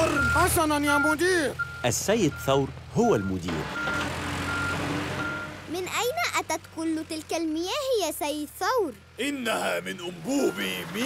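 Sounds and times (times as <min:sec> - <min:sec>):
reversing beeper: 0:00.0 - 0:05.6, 0:10.2 - 0:11.0.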